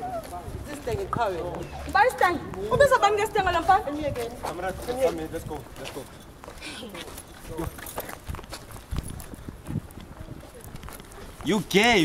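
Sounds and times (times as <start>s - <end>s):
footsteps on paving: 0.0s - 12.0s.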